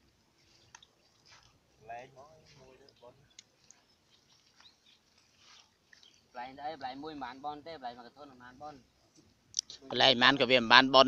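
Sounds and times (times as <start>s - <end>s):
faint clicks: 0.6s - 1.5s, 2.8s - 3.8s.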